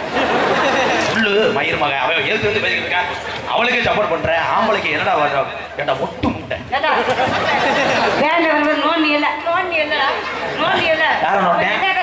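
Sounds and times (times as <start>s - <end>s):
people talking into microphones: 0.4s - 12.0s.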